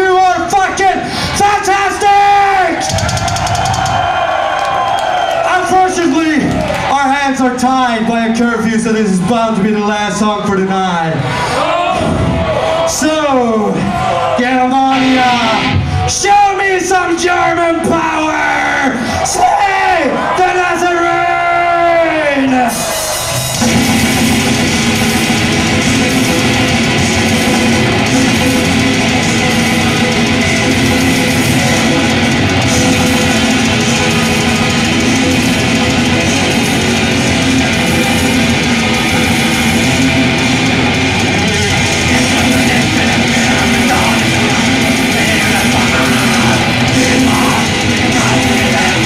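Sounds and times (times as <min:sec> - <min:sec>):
black metal band playing: 0:00.0 - 0:04.4, 0:12.0 - 0:18.3, 0:20.6 - 0:49.0.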